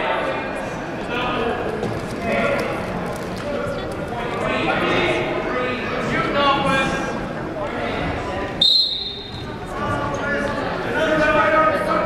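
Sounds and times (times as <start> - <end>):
people talking: 0.0 - 12.0
referee's whistle blast: 8.6 - 9.4.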